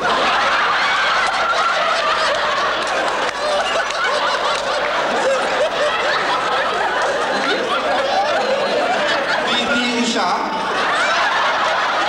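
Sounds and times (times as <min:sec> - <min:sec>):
large audience laughing: 0:00.0 - 0:12.0.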